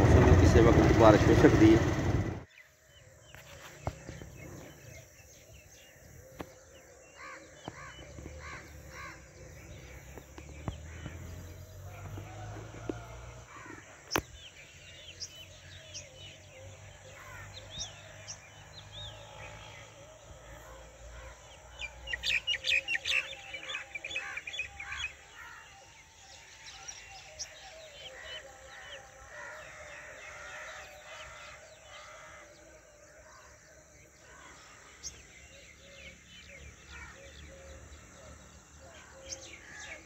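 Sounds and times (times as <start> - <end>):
birds chirping and calling: 0.0 - 40.0.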